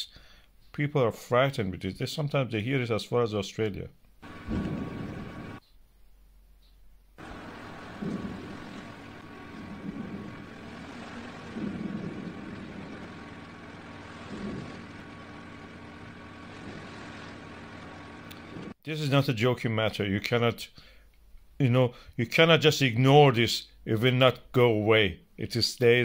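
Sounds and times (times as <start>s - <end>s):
volcano rumbling roar: 4.2s - 5.6s, 7.2s - 18.8s.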